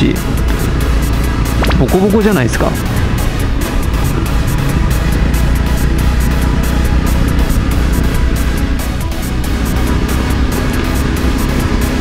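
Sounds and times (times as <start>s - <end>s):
background music with steady beat: 0.0s - 12.0s
motorcycle engine running: 0.0s - 12.0s.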